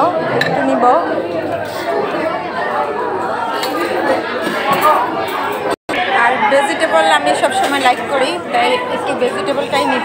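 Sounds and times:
murmur of overlapping voices: 0.0s - 10.0s.

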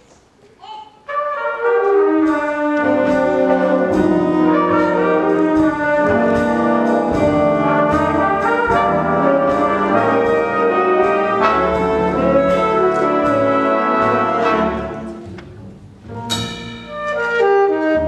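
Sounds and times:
jazz big band playing: 1.0s - 18.0s.

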